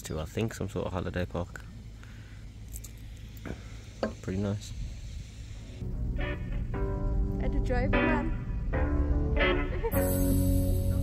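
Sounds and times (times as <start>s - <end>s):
steady low rumble: 0.2s - 11.0s.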